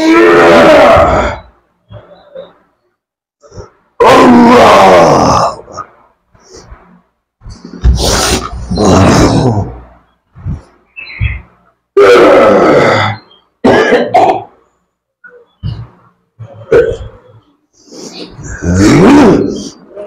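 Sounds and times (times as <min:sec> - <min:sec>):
men hacking coughs: 0:13.6 - 0:14.5.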